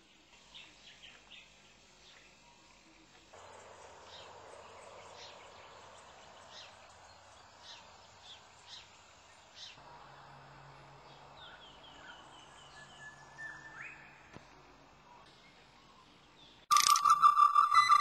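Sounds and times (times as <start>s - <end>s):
soft steady hiss: 0.0s - 16.7s
birds chirping: 3.4s - 10.3s, 11.0s - 14.3s, 15.1s - 18.0s.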